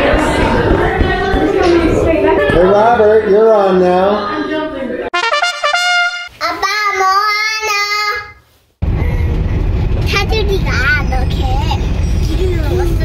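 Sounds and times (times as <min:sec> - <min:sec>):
child singing: 0:06.4 - 0:08.4
child talking: 0:06.4 - 0:08.4, 0:10.1 - 0:13.0.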